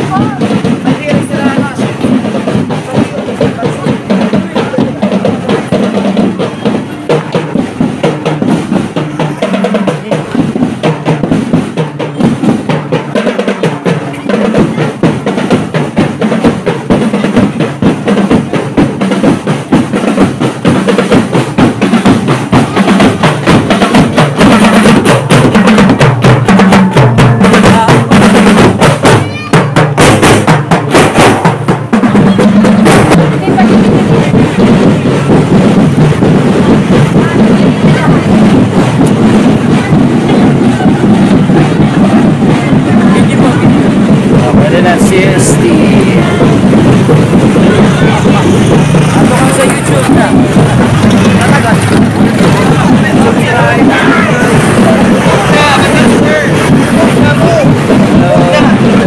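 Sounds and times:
marching band playing: 0:00.0 - 0:59.0
snare and bass drums: 0:00.0 - 0:59.0.

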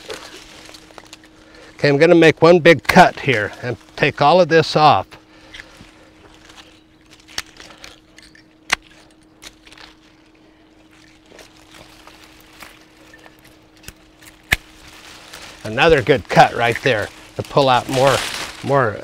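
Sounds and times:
leaves rustling: 0:00.0 - 0:19.0
pruning shears snipping: 0:02.6 - 0:04.1, 0:05.4 - 0:19.0.

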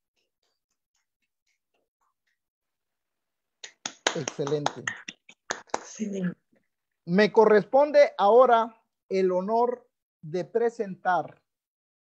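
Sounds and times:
hand claps: 0:03.6 - 0:06.0.

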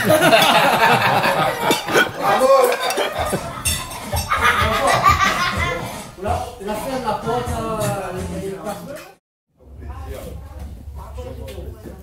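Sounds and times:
cutlery clinking against plates: 0:00.2 - 0:04.7.

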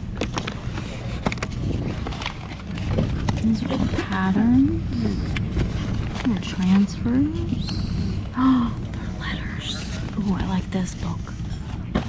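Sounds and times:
paper and cardboard rustling: 0:00.0 - 0:07.8
low rumble: 0:00.0 - 0:12.0.

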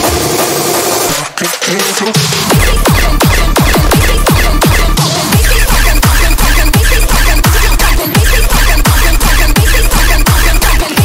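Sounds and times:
happy hardcore dance music: 0:00.0 - 0:11.0
synth and effects layers: 0:00.0 - 0:11.0.

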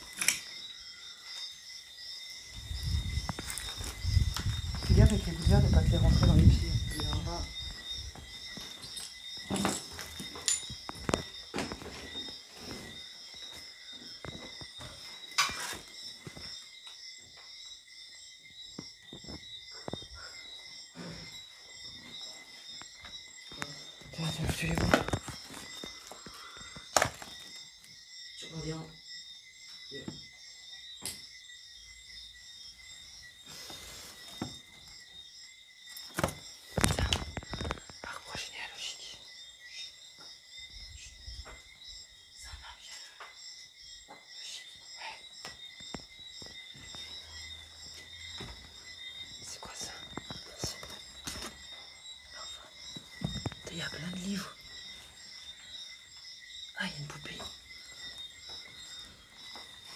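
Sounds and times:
night insects chirping: 0:00.0 - 0:59.9
footsteps on debris: 0:03.1 - 0:05.3.

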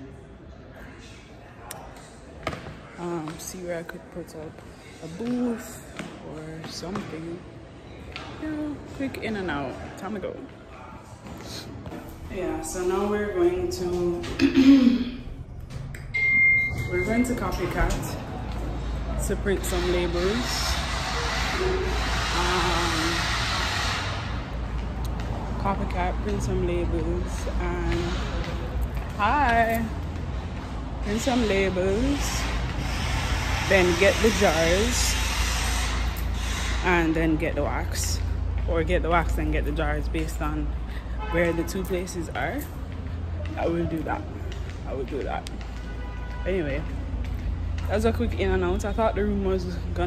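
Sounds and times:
rushing vehicle noise: 0:00.0 - 0:50.0
room noise: 0:08.0 - 0:40.5.

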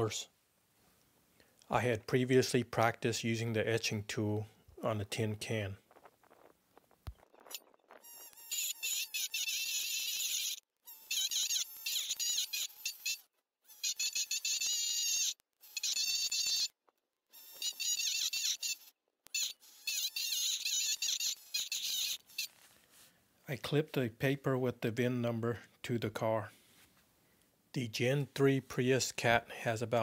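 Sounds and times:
etching pen buzzing: 0:07.4 - 0:22.6.

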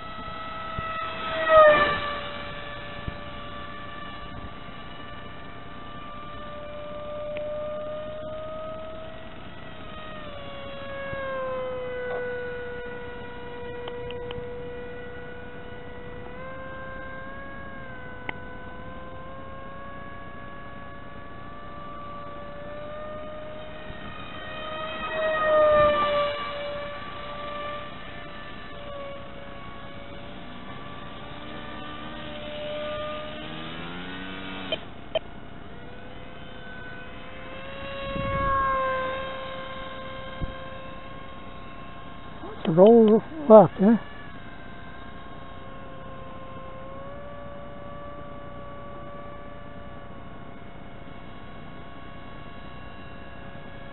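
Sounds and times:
electric motor propeller whine: 0:00.0 - 0:53.9.

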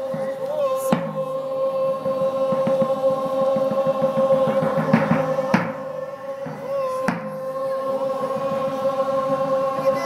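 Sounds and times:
drum beating: 0:00.0 - 0:10.0
group singing long held note: 0:00.0 - 0:10.0
sharp knocks: 0:04.2 - 0:07.4.

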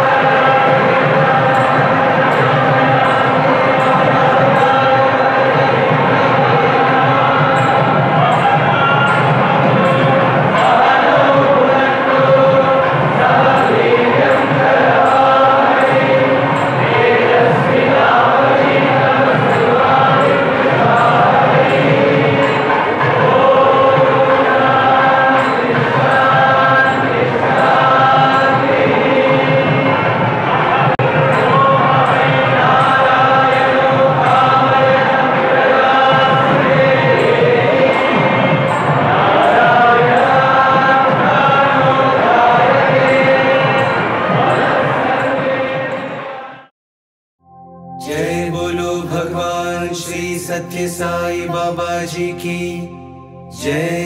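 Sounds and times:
group singing a chant: 0:00.0 - 0:46.7, 0:48.0 - 0:54.0.

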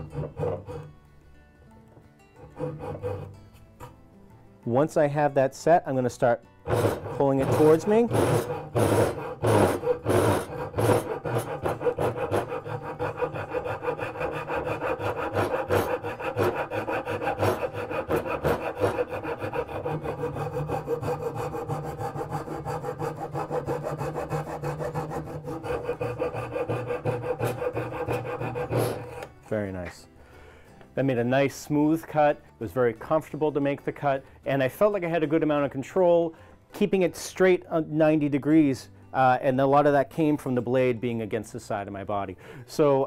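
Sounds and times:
hand saw rasping through wood: 0:00.0 - 0:00.9, 0:02.4 - 0:03.4, 0:06.6 - 0:29.3.

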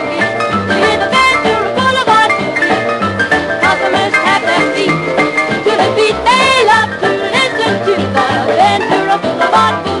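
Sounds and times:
boogie-woogie piano record: 0:00.0 - 0:10.0.

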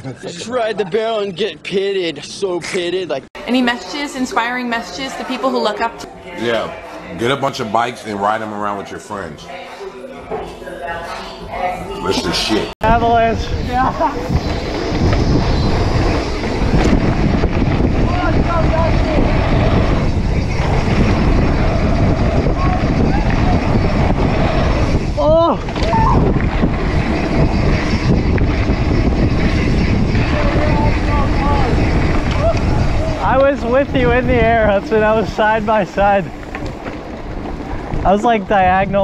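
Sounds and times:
wind buffeting microphone: 0:12.8 - 0:39.0
rising and falling call: 0:25.8 - 0:26.4
faint shouts and voices: 0:30.2 - 0:33.4.

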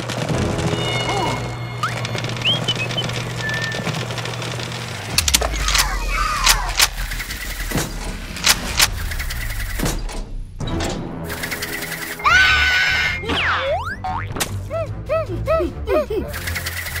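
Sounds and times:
background music: 0:00.0 - 0:07.6, 0:08.5 - 0:17.0
whistling glides: 0:00.8 - 0:04.0
sharp clicks: 0:01.8 - 0:10.3.

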